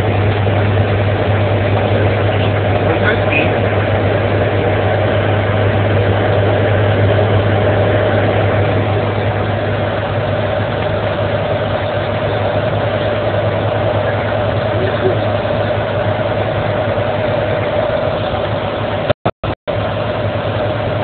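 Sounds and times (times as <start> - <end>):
constant low hum: 0.0 - 19.1
vehicle engine and tyres droning: 0.0 - 21.0.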